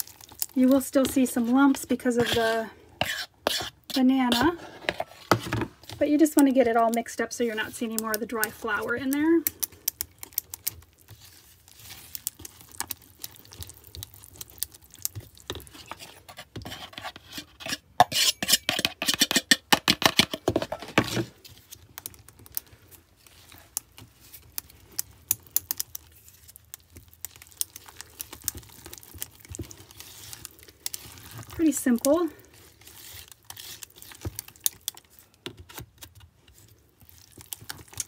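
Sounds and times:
whisk scraping plastic container: 0.6 - 6.1, 15.2 - 21.4.

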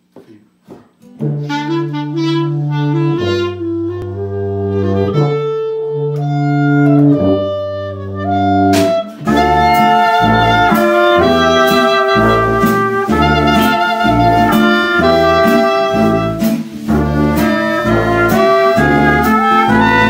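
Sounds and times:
jazz combo playing slow tune: 1.0 - 20.0
drums steady beat: 8.7 - 20.0.

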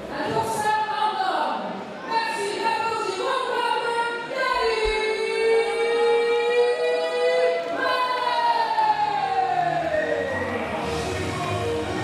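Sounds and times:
woman announcing over loudspeaker: 0.0 - 9.6.

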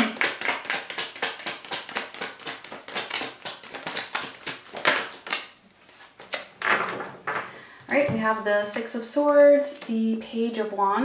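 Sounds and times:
cards being shuffled: 0.0 - 7.1
cards rustling: 0.0 - 7.1.

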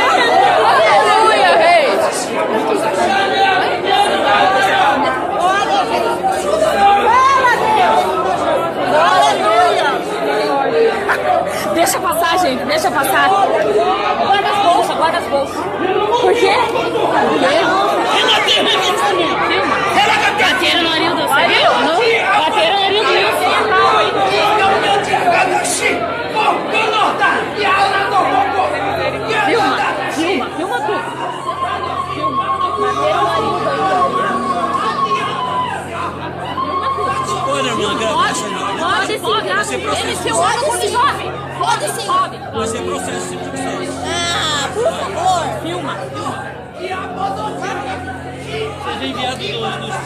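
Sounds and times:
crowd shouting in echoing hall: 0.0 - 50.0.

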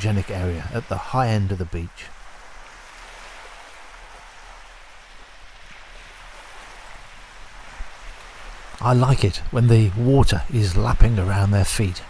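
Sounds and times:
small waves on pebble beach: 2.0 - 8.8.

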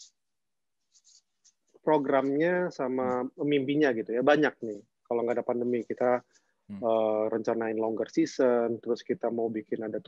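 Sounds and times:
man speaking: 1.9 - 10.0.

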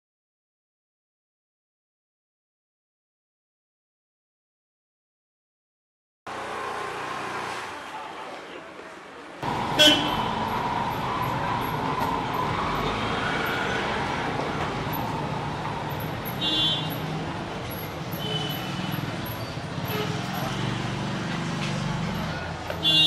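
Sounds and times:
street traffic: 6.3 - 23.0
vehicle horns honking: 9.4 - 11.8, 16.2 - 17.2, 18.1 - 20.9, 22.8 - 23.0.

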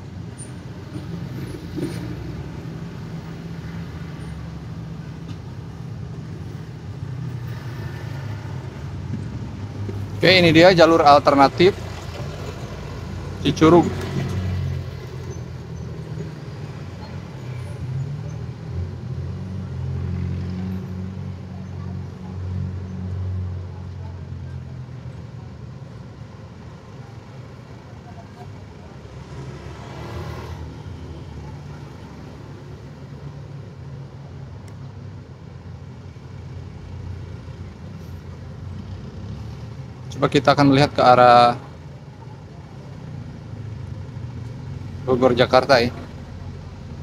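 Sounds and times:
heavy vehicle engine rumble: 0.0 - 47.0
road traffic: 0.0 - 47.0.

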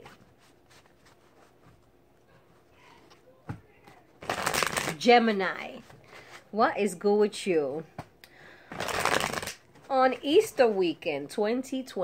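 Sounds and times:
cards riffling: 4.2 - 5.0, 8.7 - 9.7.

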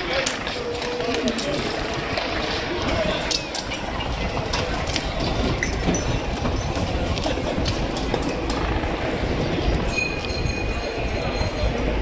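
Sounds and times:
dense street rumble: 0.0 - 12.0.

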